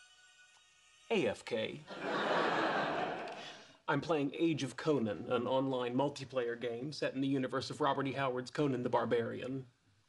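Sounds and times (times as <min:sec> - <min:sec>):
audience laughing: 0:01.9 - 0:03.6.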